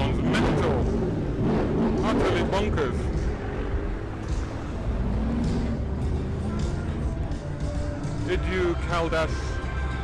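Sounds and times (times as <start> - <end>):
background music: 0.0 - 10.0
car engine rumble: 0.0 - 10.0.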